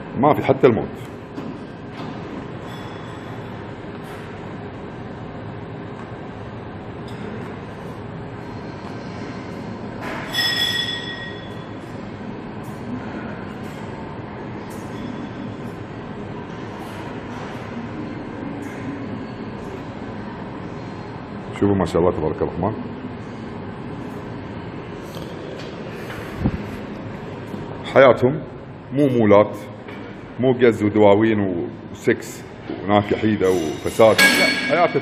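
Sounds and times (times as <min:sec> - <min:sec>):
gym background rumble: 0:00.0 - 0:35.0.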